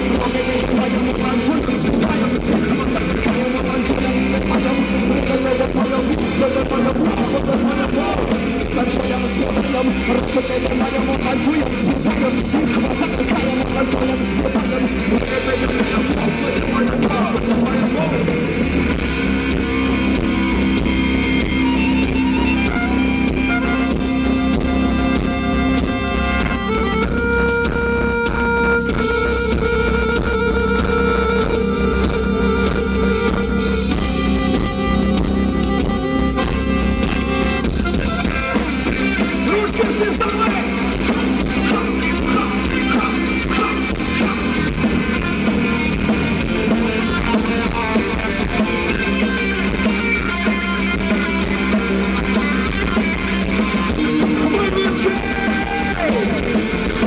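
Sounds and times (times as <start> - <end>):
accordion: 0.0 - 57.0
bass: 0.0 - 57.0
drums: 0.0 - 57.0
electric guitar: 0.0 - 57.0.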